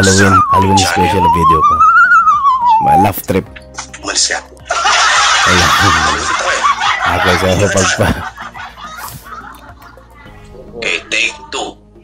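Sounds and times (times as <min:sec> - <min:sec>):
man laughing: 0:04.8 - 0:09.8.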